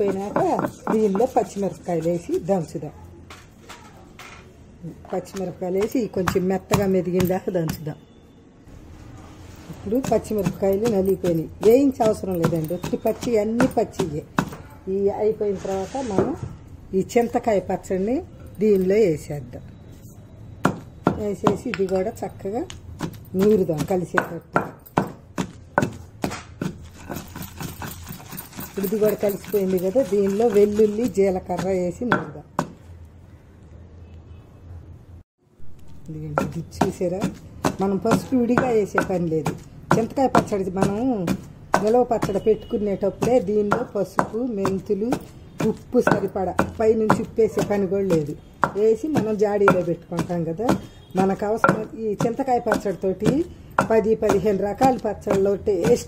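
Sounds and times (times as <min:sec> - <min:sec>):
pestle pounding in stone mortar: 0:00.0 - 0:02.3, 0:05.4 - 0:07.8, 0:09.9 - 0:14.6, 0:20.6 - 0:22.1, 0:22.7 - 0:32.8, 0:36.3 - 0:56.0
woman speaking: 0:00.0 - 0:03.2, 0:04.8 - 0:08.1, 0:09.7 - 0:19.7, 0:21.1 - 0:22.7, 0:23.3 - 0:24.6, 0:28.8 - 0:32.5, 0:36.0 - 0:56.0.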